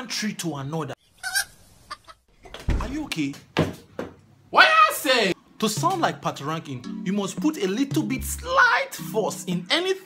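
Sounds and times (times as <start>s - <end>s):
chicken clucking: 1.2s - 2.2s.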